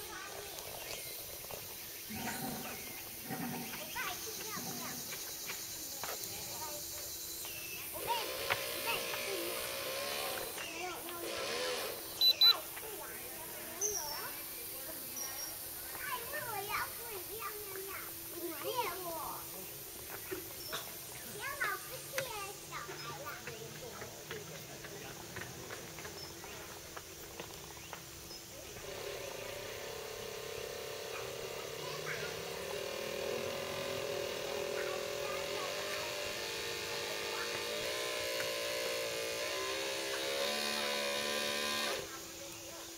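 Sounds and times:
small electric motor buzzing: 0.0 - 23.4, 28.1 - 42.9
faint distant voices: 0.0 - 42.9
short high electronic beeps: 12.2 - 12.6.

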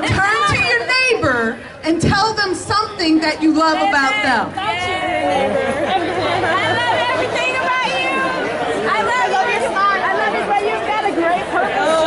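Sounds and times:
crowd chatting: 0.0 - 12.0.

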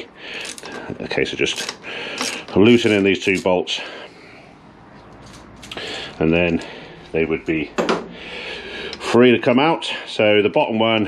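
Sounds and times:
hex key clicks and scrapes: 0.4 - 0.8, 1.5 - 3.4.

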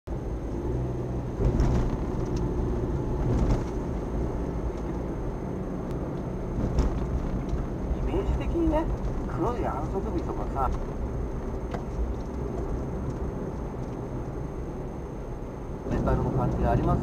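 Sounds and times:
engine and tyre rumble: 0.1 - 17.0.

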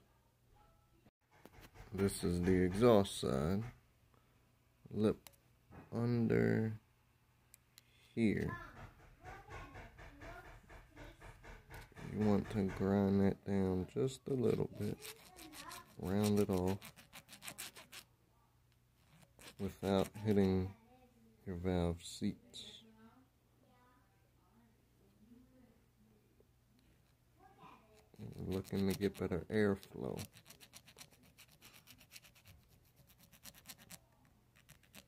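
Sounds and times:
needle file rasping on metal: 1.3 - 3.8, 14.4 - 18.1, 19.0 - 20.7, 28.1 - 34.0, 34.6 - 35.0
file scraping metal: 14.4 - 18.0, 19.0 - 20.7.

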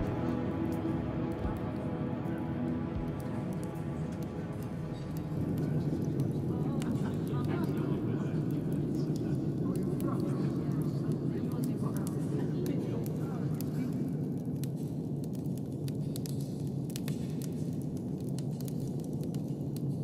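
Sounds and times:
steady low rumble: 0.0 - 12.4
murmured voices: 0.0 - 14.2
log fire crackling and popping: 0.0 - 20.0.

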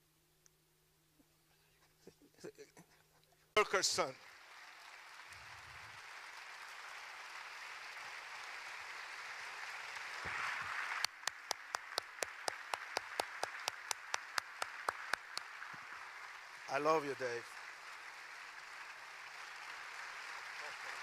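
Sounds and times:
congregation applauding: 3.6 - 21.0
sharp close claps: 3.6 - 21.0.

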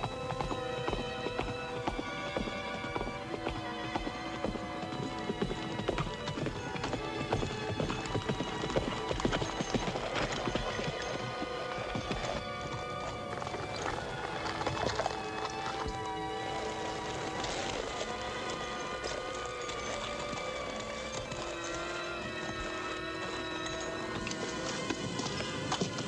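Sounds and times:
horse hooves clip-clopping: 0.0 - 26.0.

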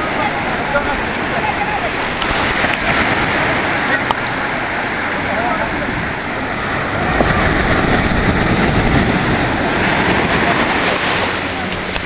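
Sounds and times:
low rumble: 2.2 - 12.0.

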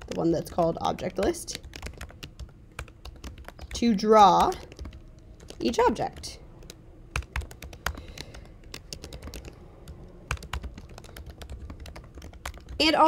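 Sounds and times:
computer keyboard typing: 0.0 - 12.9.

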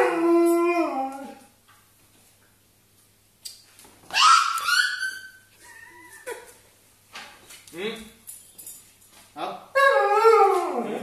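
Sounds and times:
dog whining: 4.1 - 6.5.

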